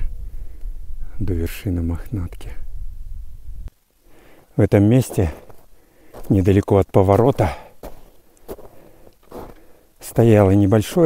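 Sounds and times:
footsteps crunching in snow: 0:04.3 - 0:10.5.

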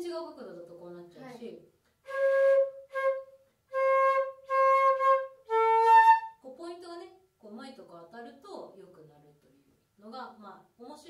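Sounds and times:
flute playing short notes: 0:02.1 - 0:06.4.

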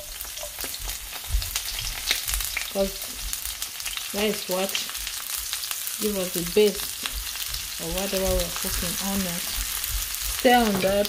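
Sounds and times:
onions sizzling in a wok: 0:00.0 - 0:11.0.

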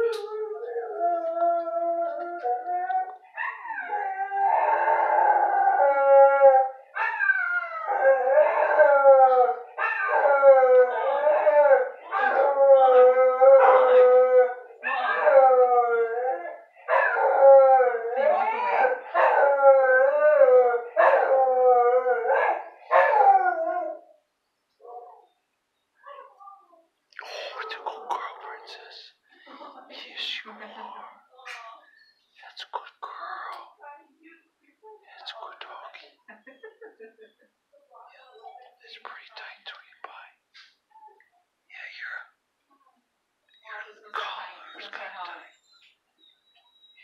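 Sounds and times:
dog howling: 0:00.0 - 0:24.1.

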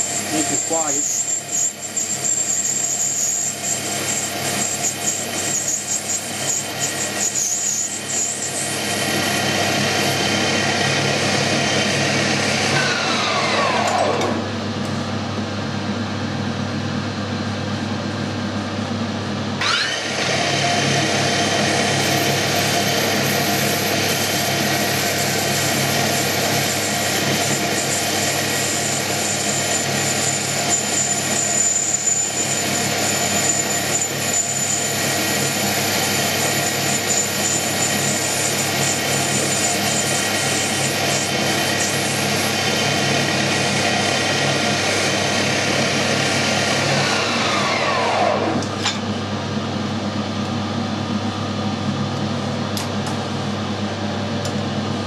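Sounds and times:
lathe spindle whine: 0:00.0 - 0:52.6.

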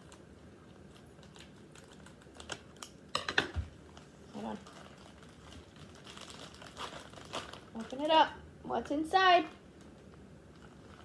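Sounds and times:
plastic packaging crinkling: 0:00.0 - 0:03.0, 0:03.7 - 0:08.3, 0:09.5 - 0:11.0.

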